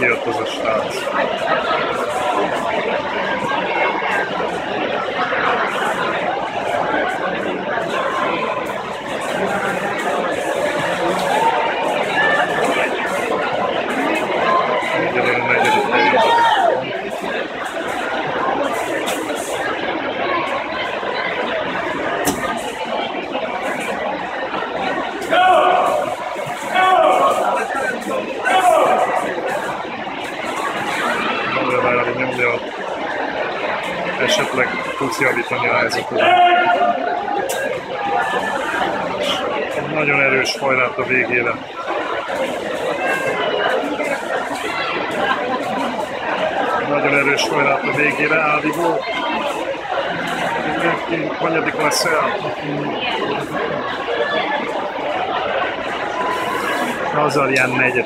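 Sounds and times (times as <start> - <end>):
spectators shouting and cheering: 0.0 - 58.0
loud drawn-out yells: 25.3 - 27.6, 28.4 - 29.2, 36.1 - 37.3.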